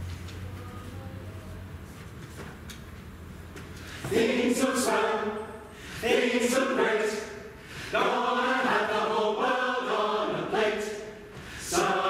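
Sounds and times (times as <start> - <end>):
mixed choir singing: 4.0 - 12.0.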